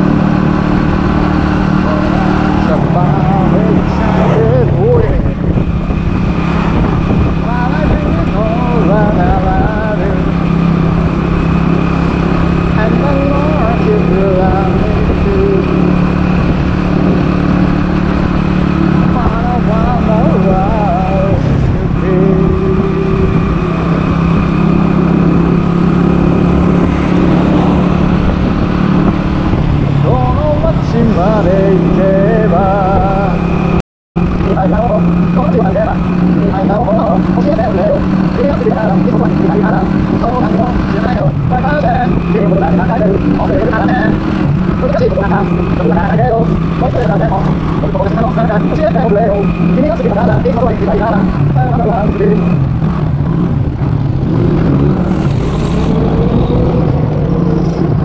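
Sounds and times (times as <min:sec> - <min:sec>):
road noise: 0:00.0 - 0:58.0
wind noise: 0:00.0 - 0:58.0.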